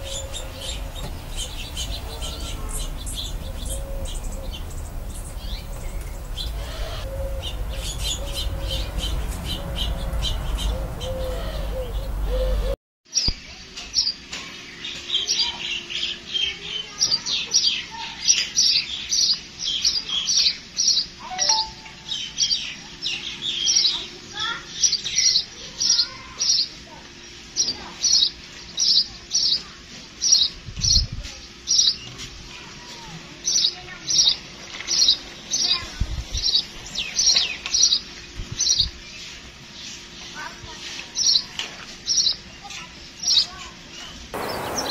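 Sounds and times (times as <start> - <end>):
sparrow chirping: 0.0 - 12.7, 17.4 - 26.7, 43.2 - 44.9.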